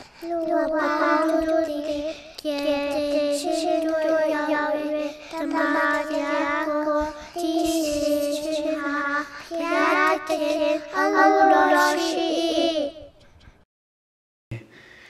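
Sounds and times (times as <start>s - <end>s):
high-pitched voice singing: 0.2s - 13.1s.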